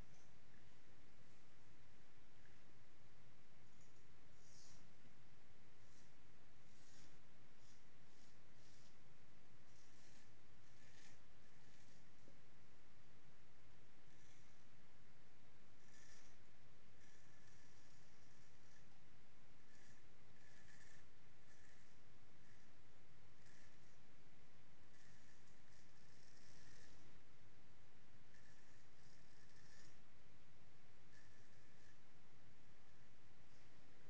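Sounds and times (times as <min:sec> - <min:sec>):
razor scraping stubble: 0:03.8 - 0:04.9, 0:05.8 - 0:09.0, 0:09.7 - 0:12.1, 0:15.8 - 0:16.4, 0:19.6 - 0:22.7, 0:23.4 - 0:24.0, 0:24.9 - 0:27.1, 0:28.3 - 0:30.0.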